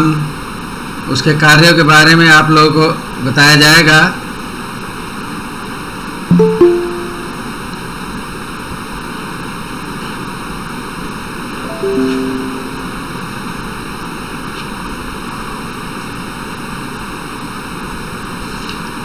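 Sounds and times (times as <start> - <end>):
descending three-note chime: 6.3 - 7.6, 11.6 - 13.6.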